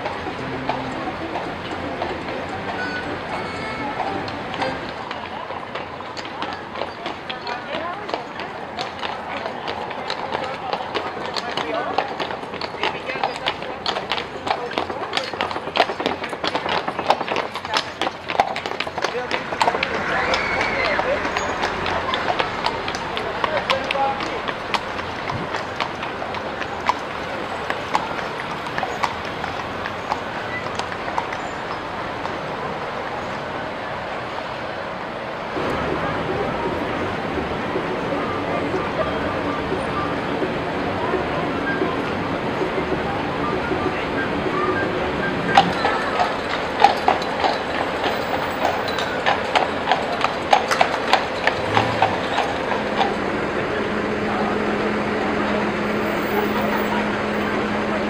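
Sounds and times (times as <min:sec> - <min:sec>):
horse hooves on cobblestones: 0:00.0 - 0:58.0
people chattering: 0:00.0 - 0:58.0.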